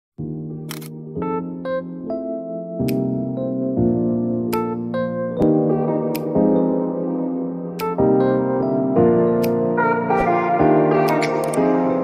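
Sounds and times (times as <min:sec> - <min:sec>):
keyboard chords: 0:00.2 - 0:12.0
camera shutter click: 0:00.7 - 0:01.0.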